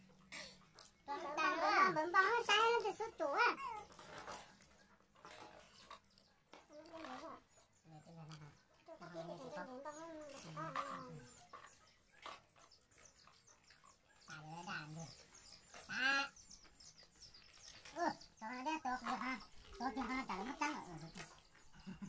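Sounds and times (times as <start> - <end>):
children and adults talking: 0.3 - 22.0.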